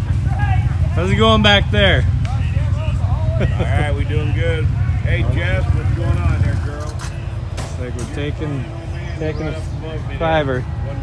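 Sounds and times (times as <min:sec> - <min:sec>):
people talking: 0:00.0 - 0:11.0
utility vehicle engines rumbling: 0:00.0 - 0:11.0.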